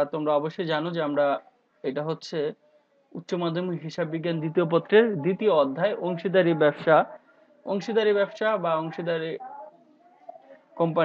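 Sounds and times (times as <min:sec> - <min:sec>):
lecturer talking: 0:00.0 - 0:11.0.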